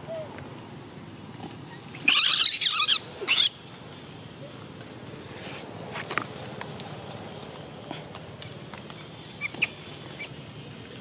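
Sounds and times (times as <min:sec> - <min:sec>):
monkey high-pitched squeal: 0:02.0 - 0:03.5.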